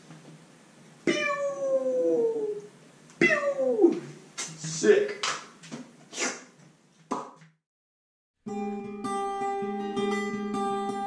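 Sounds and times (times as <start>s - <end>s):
cat meowing: 1.0s - 2.6s, 3.2s - 4.0s.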